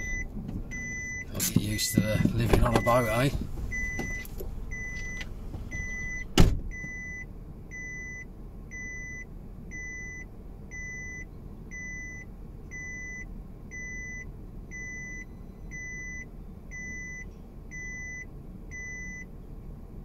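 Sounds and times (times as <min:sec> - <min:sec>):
seatbelt warning chime beeping: 0:00.0 - 0:19.3
car running noise inside cabin: 0:00.0 - 0:20.0
loud thump: 0:05.5 - 0:07.0.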